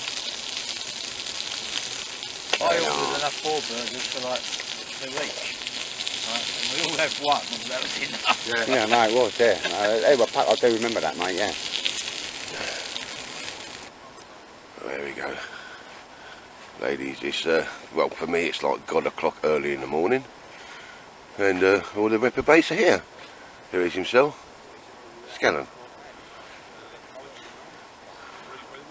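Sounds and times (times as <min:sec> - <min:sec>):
burgers sizzling on grill: 0:00.0 - 0:13.9, 0:14.6 - 0:24.5
wood fire crackling: 0:00.0 - 0:28.6.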